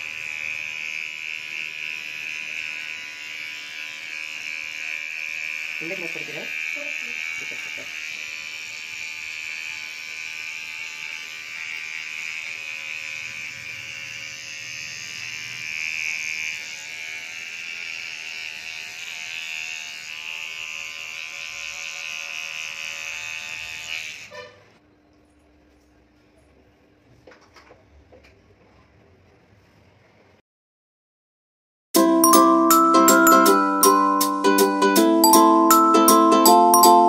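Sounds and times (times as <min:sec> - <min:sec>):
electric hair clipper buzzing: 0:00.0 - 0:24.3, 0:32.0 - 0:37.0.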